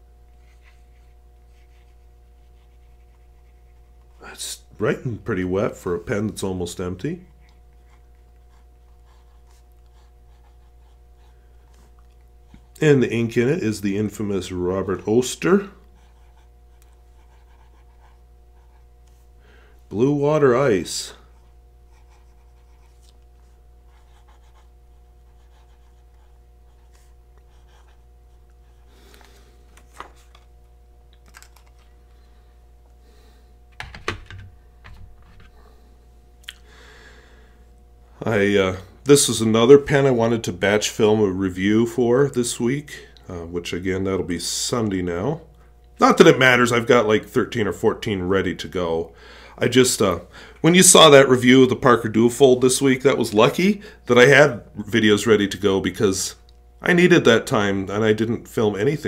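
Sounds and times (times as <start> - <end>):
low electrical hum: 0.0 - 59.0
fountain pen scratching on paper: 0.5 - 4.1, 8.4 - 11.8, 16.0 - 18.9, 21.9 - 23.0, 23.9 - 28.0.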